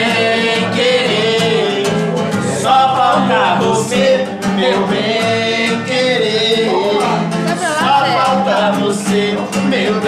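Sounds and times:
acoustic guitar strummed: 0:00.0 - 0:10.0
man singing: 0:00.0 - 0:10.0.

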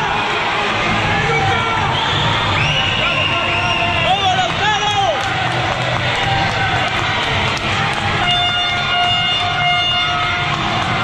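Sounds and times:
crowd noise: 0:00.0 - 0:11.0
horn blast: 0:07.5 - 0:11.0.

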